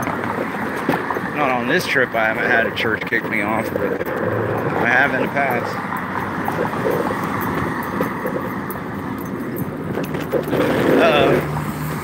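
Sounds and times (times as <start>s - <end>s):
wheels rumbling on pavement: 0.0s - 12.0s
wind on microphone: 2.5s - 12.0s.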